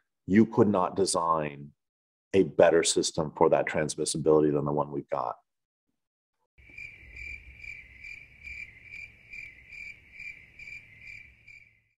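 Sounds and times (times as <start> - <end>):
cricket chirping: 6.6 - 11.9.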